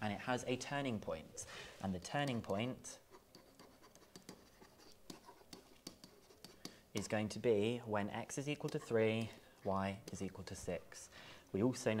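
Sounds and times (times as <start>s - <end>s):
stylus scratching and tapping: 1.8s - 11.0s.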